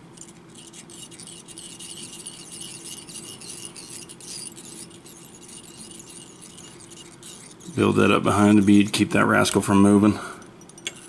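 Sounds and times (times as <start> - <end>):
thread squeaking and rasping: 0.0 - 9.0
steady faint hum: 0.0 - 11.0.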